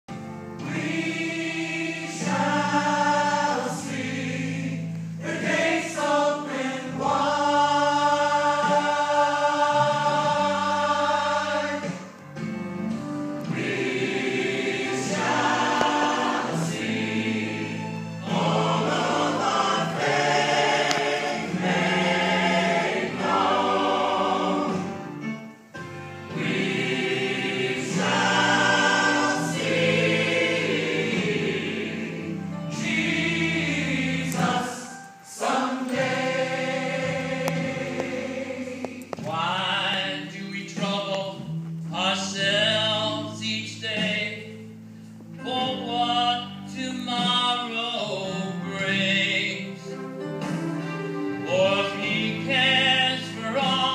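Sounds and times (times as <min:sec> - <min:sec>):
church choir singing: 0:00.1 - 0:12.2, 0:13.4 - 0:25.4, 0:26.0 - 0:40.6, 0:45.7 - 0:53.9.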